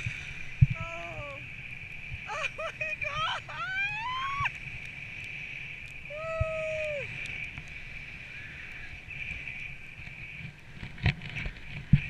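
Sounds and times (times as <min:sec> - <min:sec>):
wind rumbling on microphone: 0:00.0 - 0:12.0
person crying out and whooping: 0:02.3 - 0:04.5, 0:06.1 - 0:07.1.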